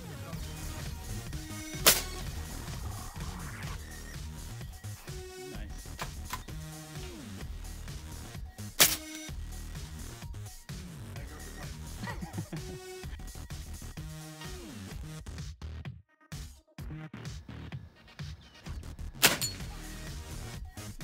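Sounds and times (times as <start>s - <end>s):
electronic music: 0.0s - 15.6s, 16.3s - 21.0s
air rifle shots: 1.8s - 2.2s, 8.8s - 9.3s, 19.2s - 19.6s.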